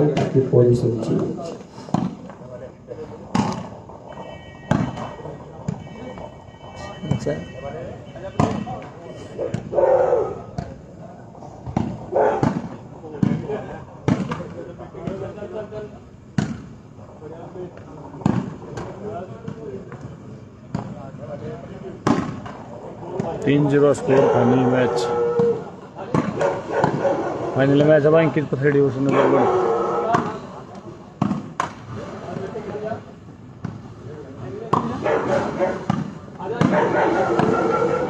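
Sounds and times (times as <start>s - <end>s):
volleyball slaps: 3.3s - 3.7s, 4.7s - 5.1s, 11.6s - 15.2s, 16.4s - 16.7s, 18.2s - 19.7s, 22.0s - 22.6s, 25.4s - 27.0s, 30.1s - 32.6s, 34.7s - 37.6s
people shouting: 24.0s - 25.7s, 29.0s - 30.4s, 36.4s - 38.0s.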